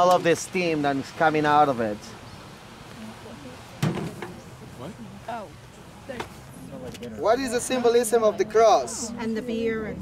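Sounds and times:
short thump: 3.8s - 4.4s.

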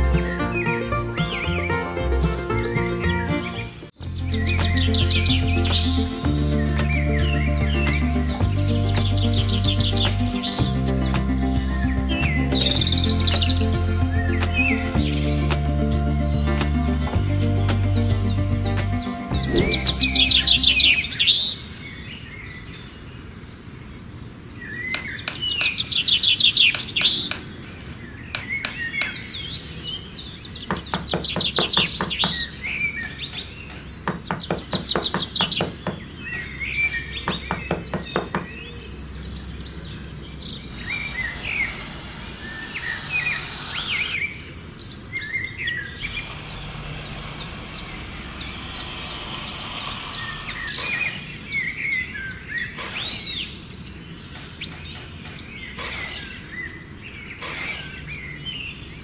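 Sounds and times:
birds chirping and trilling: 0.0s - 59.0s
trowel scraping sand: 40.6s - 44.2s, 46.0s - 51.5s.

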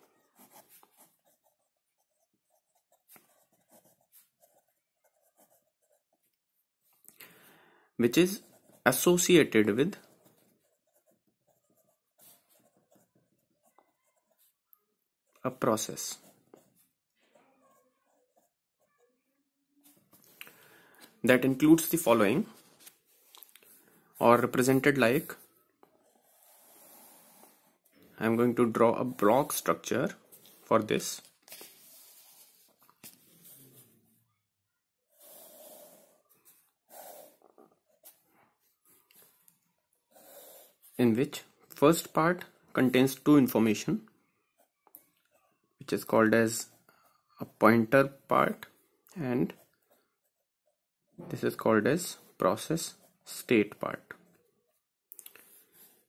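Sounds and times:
pen scratching on paper: 0.0s - 6.6s, 8.1s - 14.7s, 15.3s - 19.2s, 21.4s - 33.9s, 35.1s - 39.4s, 40.0s - 41.0s
soft breath drawn in: 7.2s - 7.9s
person speaking: 8.0s - 13.0s, 15.3s - 16.4s, 20.2s - 25.5s, 27.9s - 33.9s, 40.9s - 44.1s, 45.8s - 46.8s, 47.4s - 49.7s, 51.2s - 54.3s.

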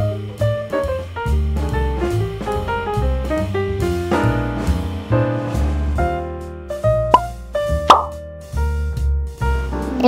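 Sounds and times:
background music: 0.0s - 10.0s
cartoon plop sound effects: 7.9s - 8.2s.

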